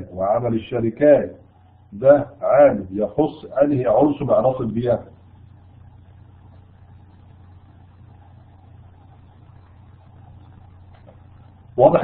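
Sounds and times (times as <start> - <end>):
faint hiss: 0.0 - 12.0
steady low hum: 0.0 - 12.0.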